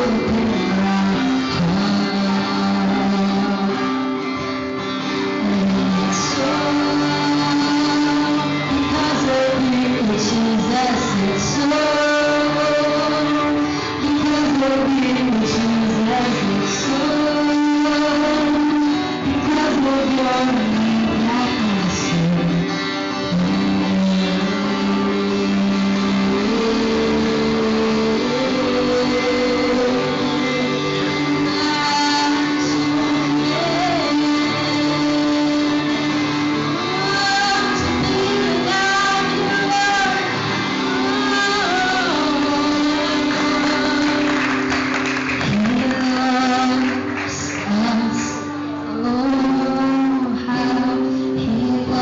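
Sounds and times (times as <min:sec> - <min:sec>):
acoustic guitar music: 0:00.0 - 0:52.0
melody of long held notes: 0:00.0 - 0:52.0.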